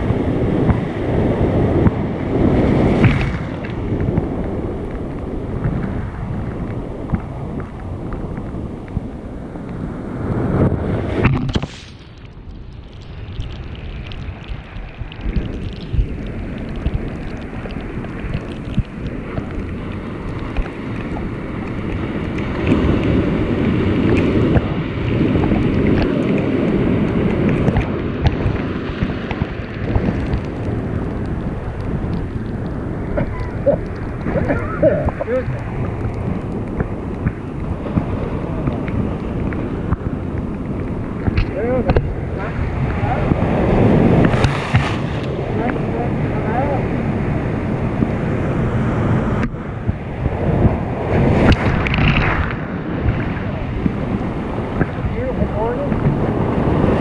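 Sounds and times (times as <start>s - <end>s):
ocean surf breaking: 0.0s - 57.0s
wind buffeting microphone: 0.0s - 57.0s.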